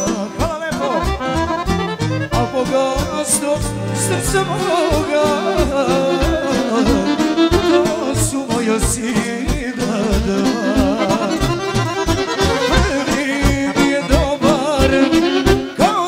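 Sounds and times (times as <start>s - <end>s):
man singing into microphone: 0.0s - 1.4s, 2.3s - 11.7s, 12.5s - 16.0s
accordion-like tones: 0.0s - 16.0s
violin: 0.0s - 16.0s
steady bass beat: 1.0s - 9.1s.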